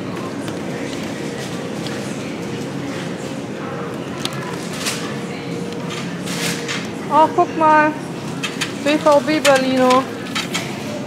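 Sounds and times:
shopping trolley rattling: 8.3s - 10.9s.

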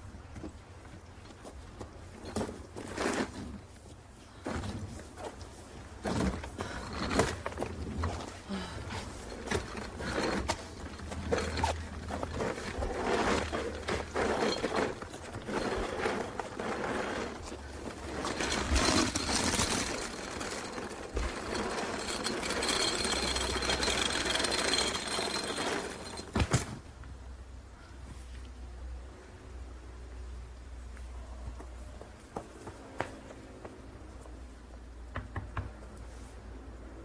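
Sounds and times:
suitcase dragged over asphalt: 2.2s - 26.8s.

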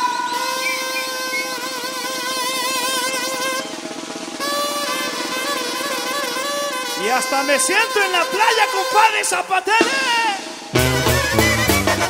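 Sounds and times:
wind section holding long notes: 0.0s - 12.0s
snare drum roll: 0.4s - 12.0s.

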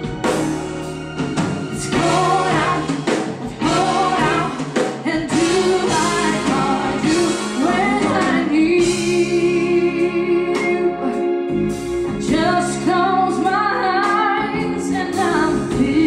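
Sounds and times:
big band playing: 0.0s - 16.0s
woman singing: 1.8s - 11.5s, 12.1s - 16.0s.

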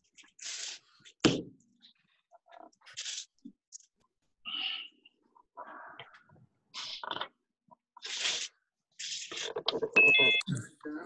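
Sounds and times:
electronic beep: 10.0s - 10.7s.

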